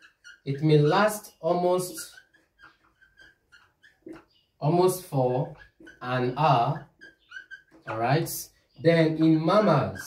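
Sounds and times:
marker squeaking on whiteboard: 0.0 - 10.0.

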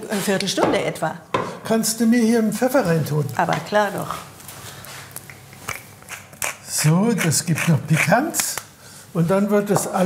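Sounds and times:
low kitchen hum: 0.0 - 10.0.

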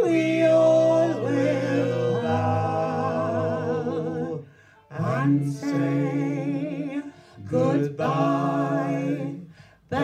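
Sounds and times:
voices singing in harmony: 0.0 - 10.0.

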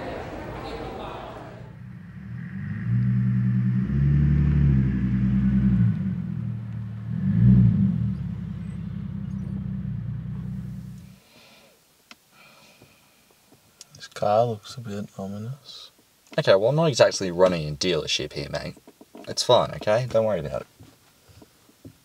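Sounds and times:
car engine: 1.5 - 11.2.

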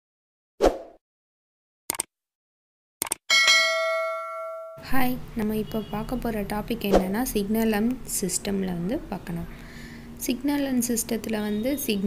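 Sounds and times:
short clicks: 3.0 - 3.2
bell ding: 3.3 - 5.0.

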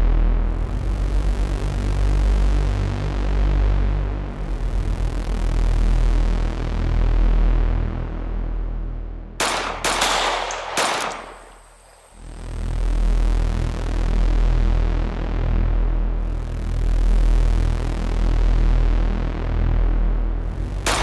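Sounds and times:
bass-heavy electronic music: 0.0 - 9.2
gunshots: 9.4 - 12.2.

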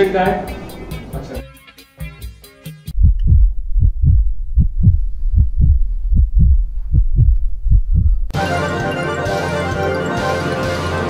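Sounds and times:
music with ticking beats: 0.0 - 11.0
heartbeat thumps: 2.9 - 8.4.

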